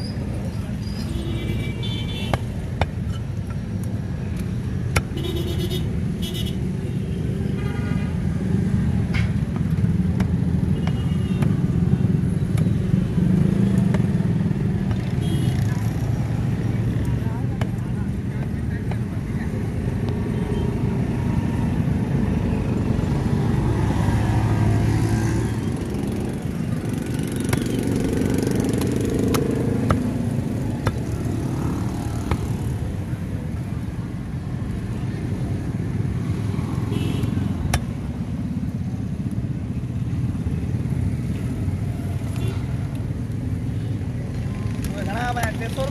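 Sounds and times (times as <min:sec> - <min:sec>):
motor traffic rumble: 0:00.0 - 0:45.9
cleaver chopping fish on wood: 0:28.7 - 0:31.2.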